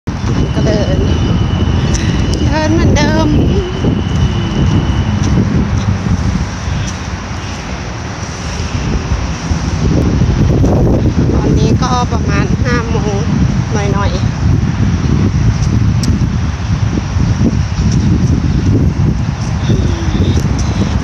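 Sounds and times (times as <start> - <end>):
road traffic rumble: 0.0 - 21.0
wind buffeting microphone: 0.0 - 21.0.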